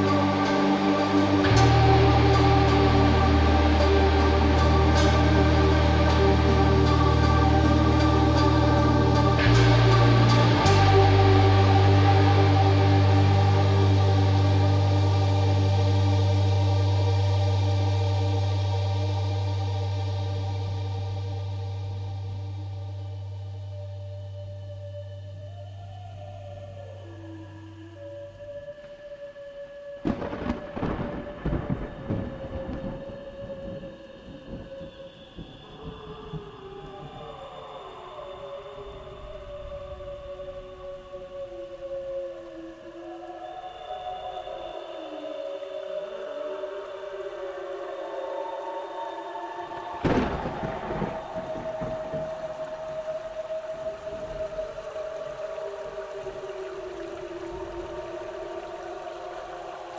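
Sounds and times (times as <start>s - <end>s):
ambient drone music: 0.0s - 59.9s
thunder rumbling: 30.0s - 41.1s, 49.6s - 59.9s.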